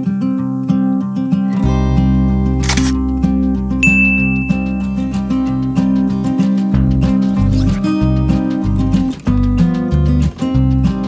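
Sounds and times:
acoustic guitar strumming: 0.0s - 11.0s
bass line: 1.6s - 11.0s
camera shutter click: 2.6s - 3.0s.

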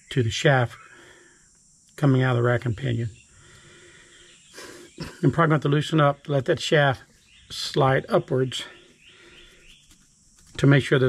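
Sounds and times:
man speaking: 0.0s - 0.8s, 2.0s - 3.2s, 5.0s - 8.8s, 10.6s - 11.0s.

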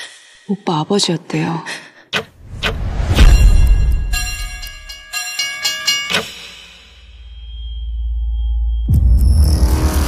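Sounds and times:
sharp hits: 2.4s - 5.1s.

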